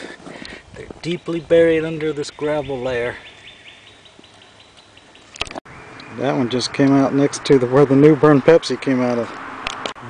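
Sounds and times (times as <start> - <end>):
high bird chirps: 2.0 - 6.5.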